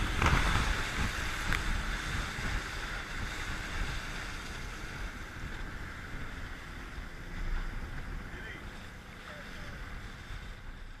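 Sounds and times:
water rushing along hull: 0.0 - 11.0
wind buffeting microphone: 0.0 - 11.0.

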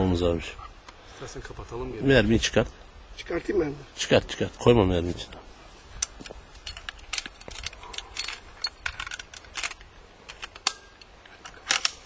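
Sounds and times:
rifle action clicking and rattling: 6.0 - 12.0.

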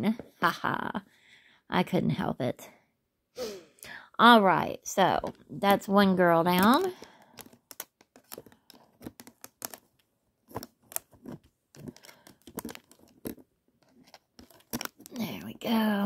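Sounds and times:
fingers tapping and rubbing plastic: 6.5 - 15.5.

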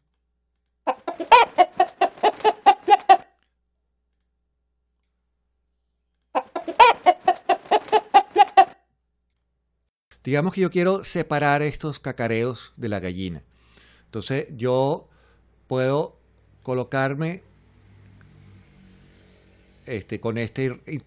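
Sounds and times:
pitched-down hen clucking: 0.9 - 3.3, 6.4 - 8.8.

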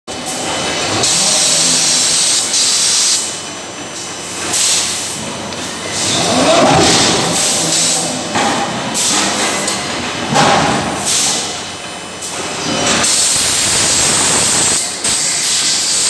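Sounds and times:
low machine hum: 5.1 - 12.8
forging press hissing bursts: 5.9 - 8.2, 11.0 - 11.6, 13.0 - 16.0.

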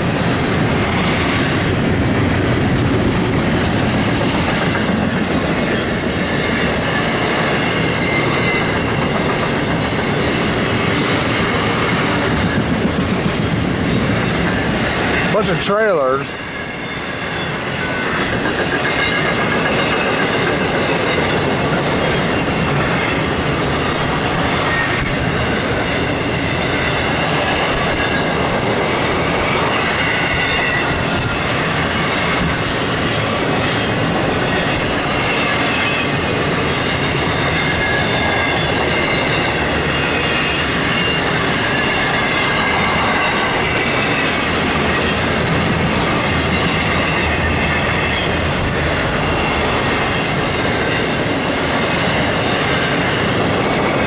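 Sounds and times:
train wheels rumbling on rail: 0.0 - 54.0
high-pitched wheel squeal: 36.9 - 44.3.

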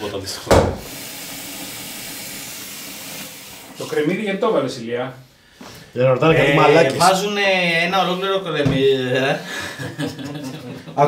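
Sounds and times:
loud thump: 0.5 - 1.0
tap water filling a pot: 0.6 - 4.2.

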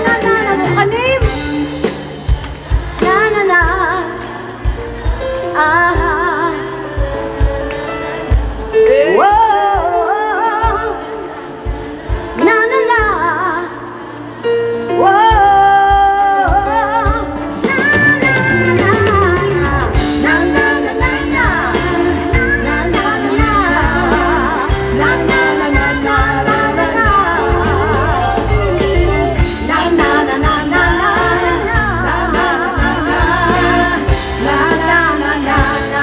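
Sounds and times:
drums: 0.0 - 36.0
electric guitar: 0.0 - 36.0
person singing: 2.7 - 36.0.

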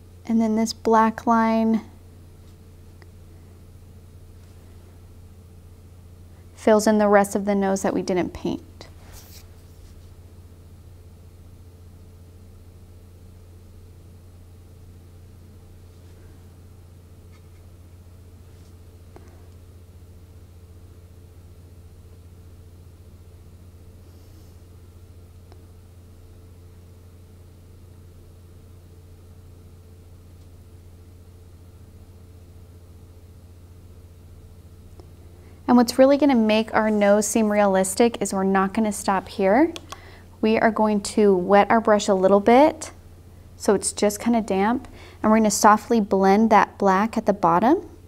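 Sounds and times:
low hum: 0.0 - 48.0.

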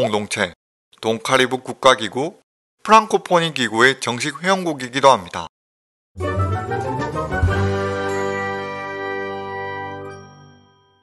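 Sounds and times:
bell-like chime: 7.8 - 11.0.

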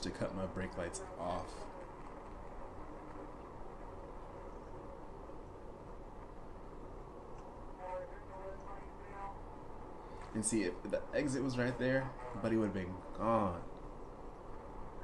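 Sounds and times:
faint voice: 7.8 - 9.4.

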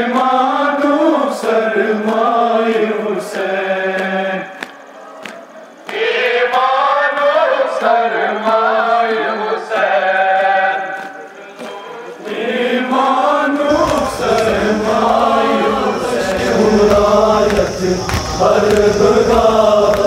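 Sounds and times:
men chanting a mourning lament: 0.0 - 20.0.

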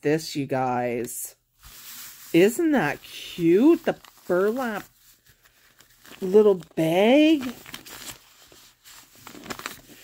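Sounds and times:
hands rustling a burlap bag: 1.6 - 10.0.

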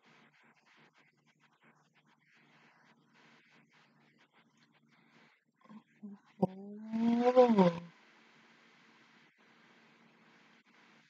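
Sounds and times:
woman's drawn-out wordless vocal: 6.4 - 7.9.

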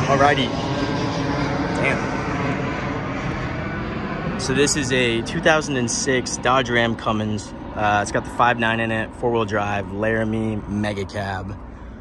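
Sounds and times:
passenger jet flying overhead: 0.0 - 12.0.

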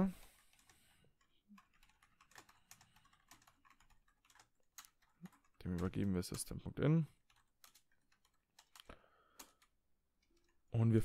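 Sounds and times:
computer keyboard typing: 0.2 - 10.7.

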